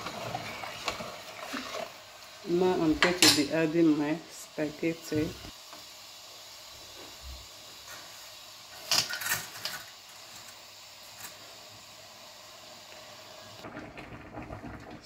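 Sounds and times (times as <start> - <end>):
vegetables sizzling in oil: 0.0 - 14.4.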